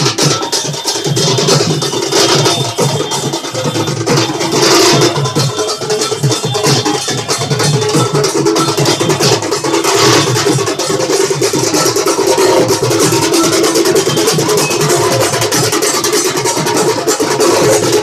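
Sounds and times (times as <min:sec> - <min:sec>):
drums beaten in fast rhythm: 0:00.0 - 0:18.0.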